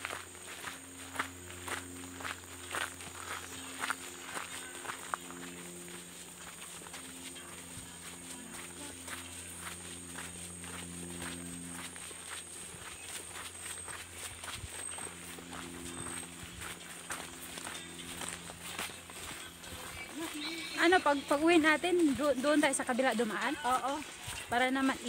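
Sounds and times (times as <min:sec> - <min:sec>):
footsteps on leafy dirt trail: 0:00.0 - 0:25.0
person speaking: 0:19.8 - 0:25.0.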